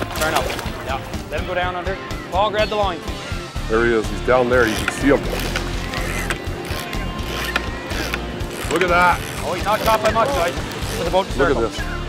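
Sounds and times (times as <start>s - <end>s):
background music: 0.0s - 12.0s
boat engine humming: 3.8s - 11.7s.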